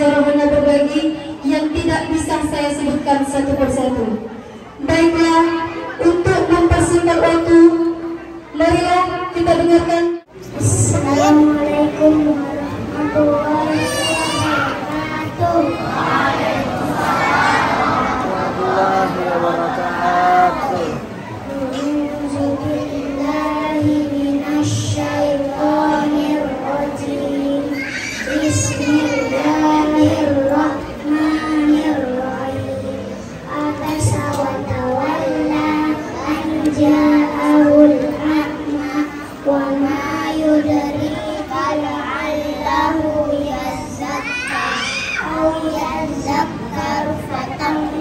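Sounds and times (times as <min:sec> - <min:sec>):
boy singing into a microphone: 0:10.4 - 0:17.1, 0:18.2 - 0:48.0.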